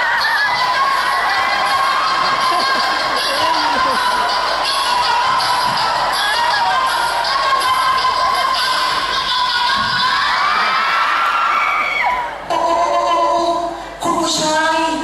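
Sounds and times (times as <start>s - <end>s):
music with a steady beat: 0.0s - 10.6s
audience cheering and shouting: 0.0s - 12.6s.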